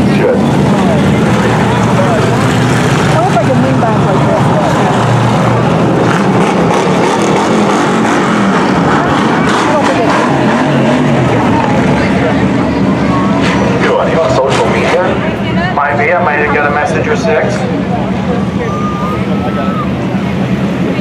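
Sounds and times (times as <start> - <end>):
race car engines revving: 0.0 - 21.0.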